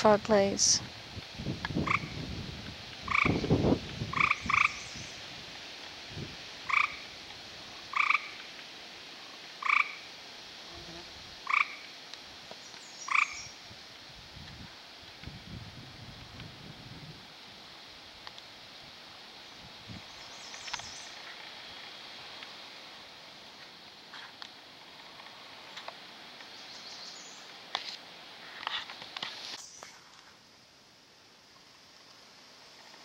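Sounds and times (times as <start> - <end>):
frog chirping calls: 1.8 - 2.2, 3.0 - 5.2, 6.6 - 7.2, 7.9 - 8.4, 9.6 - 10.1, 11.4 - 11.9, 13.0 - 13.6.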